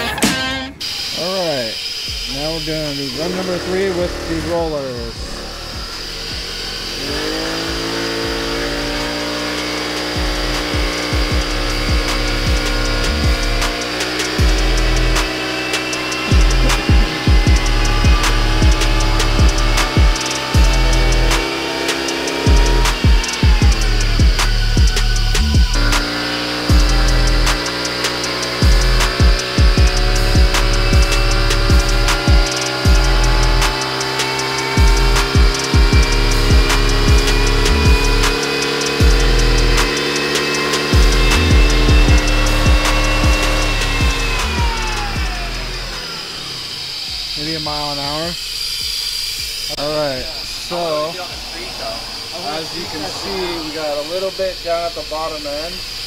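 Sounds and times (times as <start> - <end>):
music with steady beat: 0.0 - 56.0
scooter engine revving: 0.0 - 56.0.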